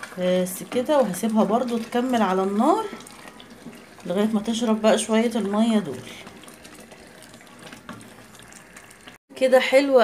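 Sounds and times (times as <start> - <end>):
pot simmering hiss: 0.0 - 9.2.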